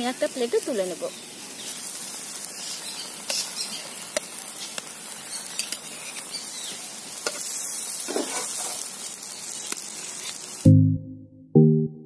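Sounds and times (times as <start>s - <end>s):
food sizzling in wok: 0.0s - 10.8s
metal spatula scraping pan: 7.3s - 8.9s.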